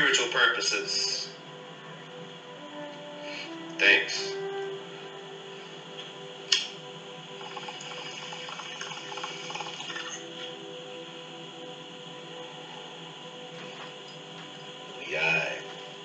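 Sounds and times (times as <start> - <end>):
quiet background music: 0.0 - 16.0
sharp click: 6.5 - 6.8.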